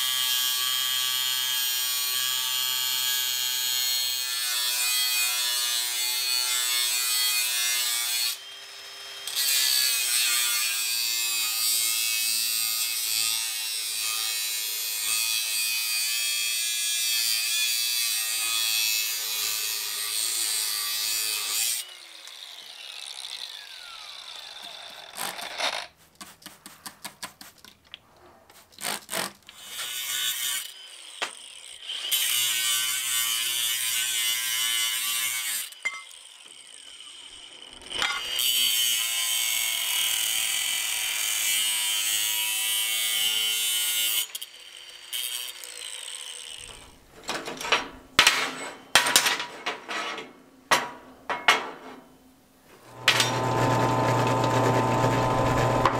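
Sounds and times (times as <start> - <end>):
angle grinder cutting steel: 0.0 - 25.9, 28.8 - 47.0, 52.9 - 55.9
grinder wheel spinning down: 22.2 - 25.9, 52.9 - 55.9.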